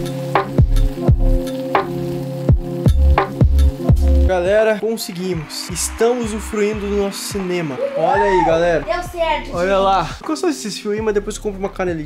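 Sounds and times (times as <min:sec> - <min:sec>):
electronic music with deep bass: 0:00.0 - 0:04.6.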